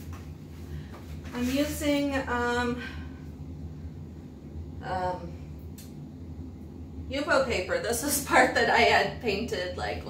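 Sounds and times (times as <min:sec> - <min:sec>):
low background hum: 0:00.0 - 0:10.0
woman saying um: 0:01.4 - 0:02.9, 0:04.8 - 0:05.4.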